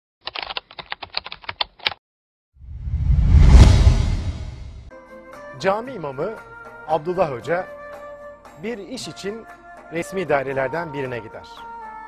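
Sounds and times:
keyboard typing: 0:00.2 - 0:02.0.

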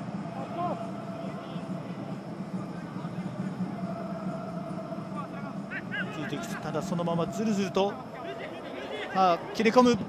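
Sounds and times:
stadium crowd hum: 0:00.0 - 0:10.0.

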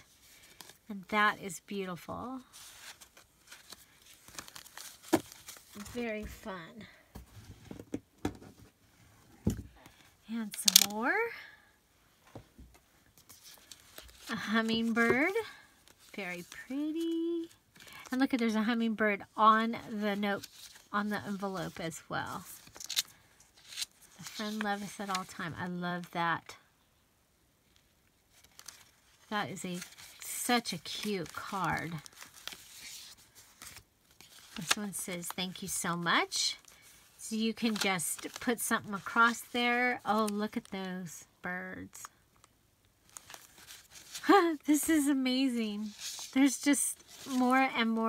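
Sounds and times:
light paper rustling: 0:02.4 - 0:08.7, 0:13.2 - 0:18.4, 0:20.0 - 0:25.4, 0:28.3 - 0:40.7, 0:43.0 - 0:48.0.

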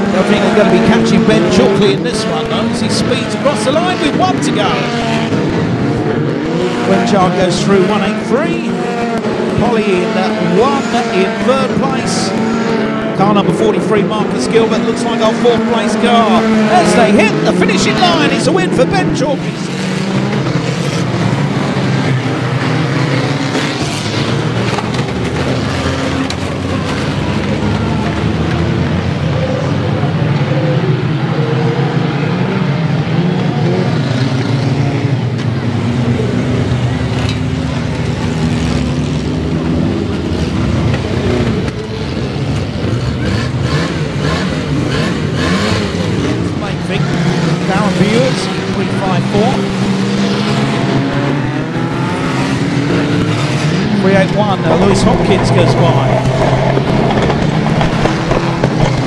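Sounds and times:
racing car engines revving: 0:00.0 - 0:59.0.

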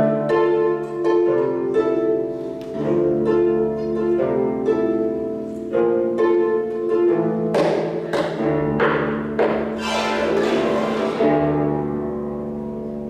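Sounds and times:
harp plucked chords: 0:08.5 - 0:12.9.

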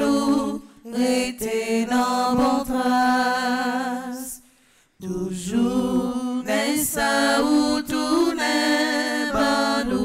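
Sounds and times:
person singing a devotional chant: 0:00.0 - 0:04.4, 0:05.0 - 0:10.0.

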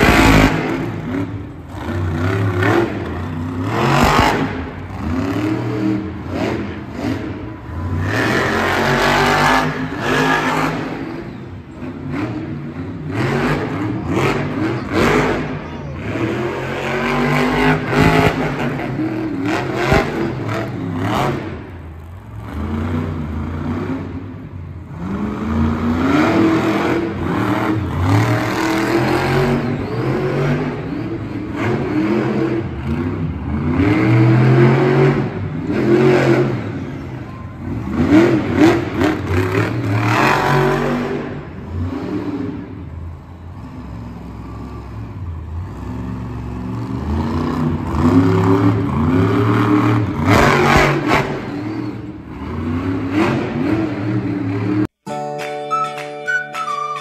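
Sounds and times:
truck engine revving hard: 0:00.0 - 0:54.9.

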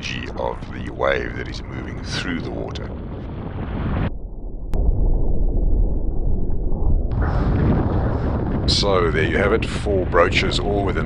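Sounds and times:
strong wind: 0:00.0 - 0:11.0
wind buffeting microphone: 0:00.0 - 0:11.0.

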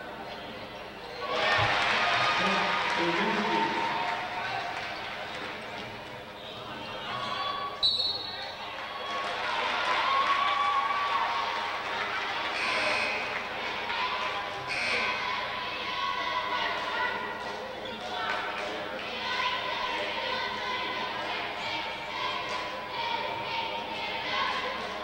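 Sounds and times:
crowd voices echoing: 0:00.0 - 0:25.0.

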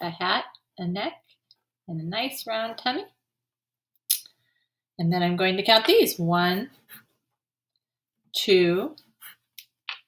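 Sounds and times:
pencil scratching on paper: 0:06.5 - 0:07.2, 0:09.0 - 0:09.5.

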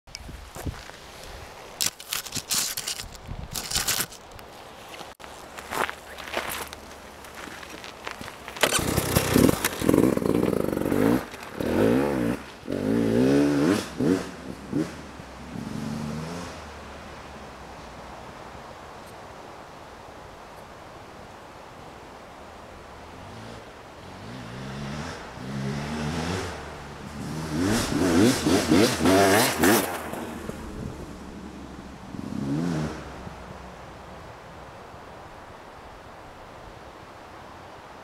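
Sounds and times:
knocks and scrapes: 0:01.8 - 0:04.3
motorcycle engine revving past: 0:08.6 - 0:16.8, 0:23.3 - 0:33.4.

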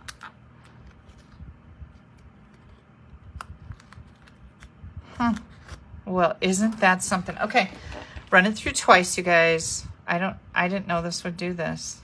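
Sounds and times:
paper rustling: 0:00.1 - 0:05.8, 0:06.6 - 0:08.5.

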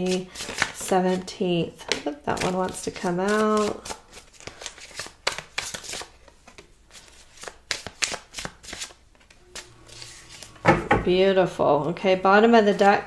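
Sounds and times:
cards being shuffled: 0:00.1 - 0:01.3, 0:01.9 - 0:10.6.

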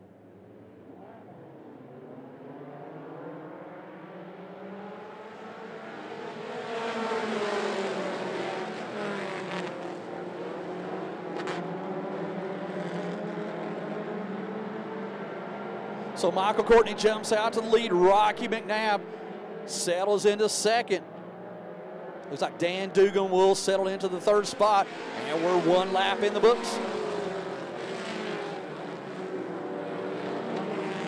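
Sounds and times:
race car engines accelerating: 0:00.4 - 0:31.0.

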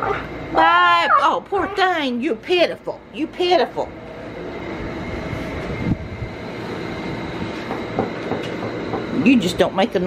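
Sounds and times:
electric fan running: 0:00.0 - 0:10.0.

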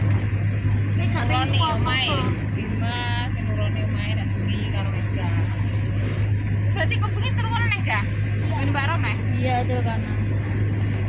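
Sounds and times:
car engine and road noise: 0:00.0 - 0:11.0
people talking: 0:00.9 - 0:05.6, 0:06.7 - 0:10.6.

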